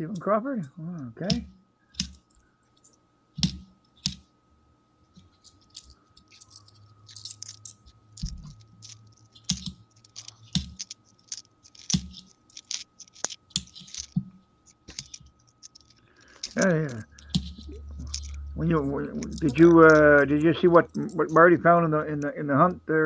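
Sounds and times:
coins clicking and scraping: 0:02.0 - 0:04.2, 0:05.1 - 0:22.1.

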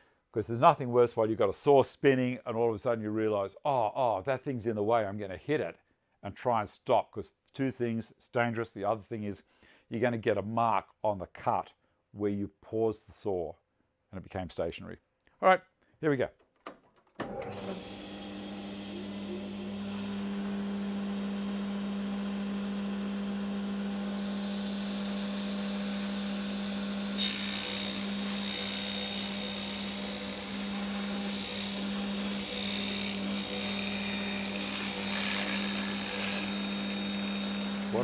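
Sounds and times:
table saw running: 0:17.2 - 0:38.0
saw blade cutting wood: 0:22.6 - 0:38.0.

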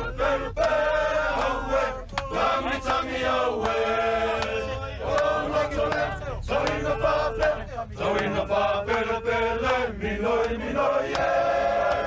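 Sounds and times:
men singing in chant-like harmony: 0:00.0 - 0:12.0.

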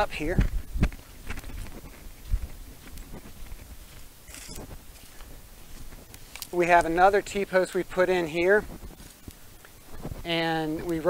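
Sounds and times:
footsteps through grass and leaves: 0:00.2 - 0:11.0.

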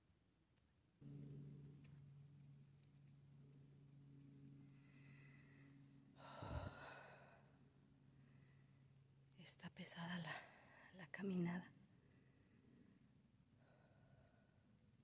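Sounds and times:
faint steady low hum: 0:00.0 - 0:15.0.

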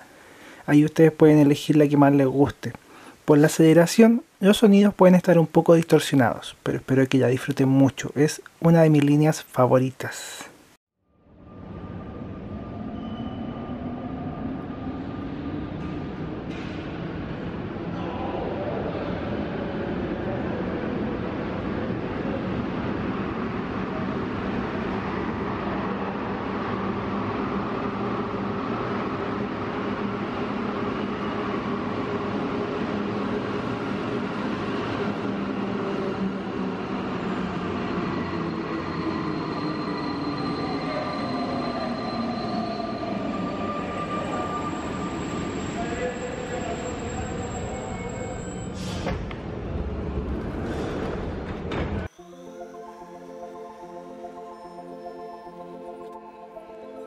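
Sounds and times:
metro train running: 0:11.2 - 0:53.0
falling brake whine: 0:26.2 - 0:52.1.

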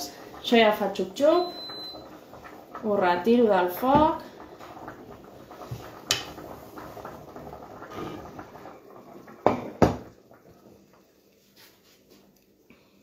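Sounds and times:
cooking pot knocks: 0:09.4 - 0:10.2.

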